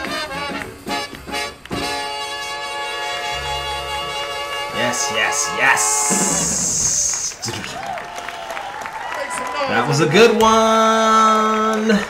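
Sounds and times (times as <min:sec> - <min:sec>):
swing band with brass: 0:00.0 - 0:07.7.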